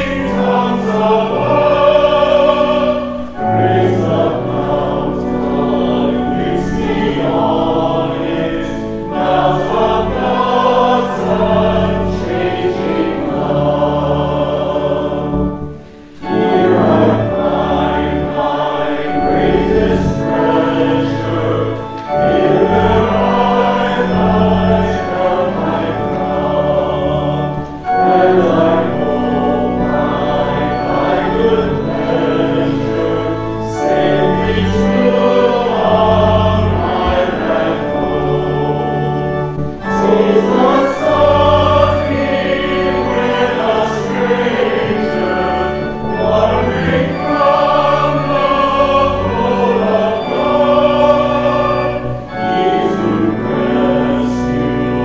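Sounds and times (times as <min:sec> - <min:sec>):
choir singing a hymn: 0:00.0 - 0:55.0
instrumental accompaniment: 0:00.0 - 0:55.0.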